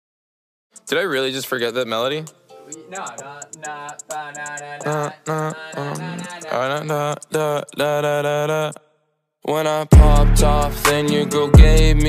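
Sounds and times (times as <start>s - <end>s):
voice singing wordless melody: 0.8s - 12.0s.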